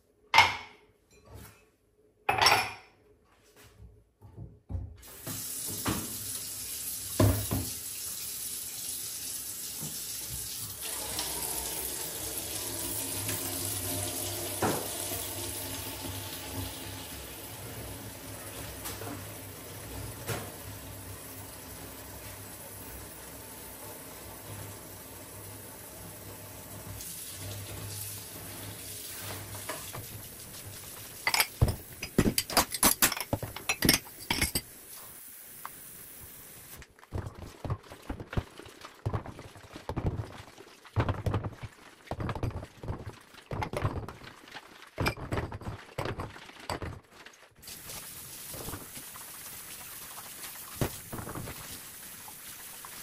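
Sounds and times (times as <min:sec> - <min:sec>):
dishes and glasses clinking: 0:00.4 - 0:03.0, 0:31.2 - 0:34.7.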